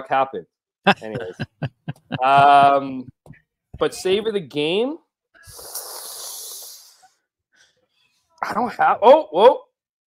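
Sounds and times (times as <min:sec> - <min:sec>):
long breathy exhale: 0:05.5 - 0:07.1.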